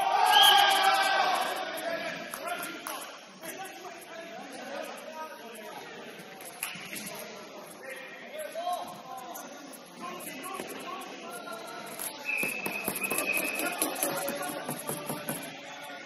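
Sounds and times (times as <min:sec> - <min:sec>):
ball bouncing on wooden court: 0:12.4 - 0:15.5
sharp knocks: 0:12.4 - 0:15.5.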